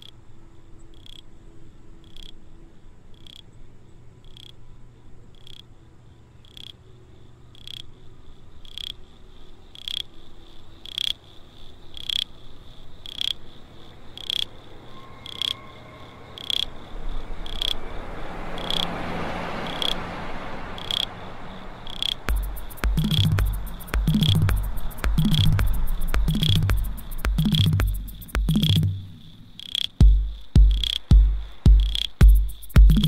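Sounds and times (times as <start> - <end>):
high electronic tick: 22.0 - 33.0
low bass hum: 22.3 - 33.0
noisy synth swell: 22.3 - 33.0.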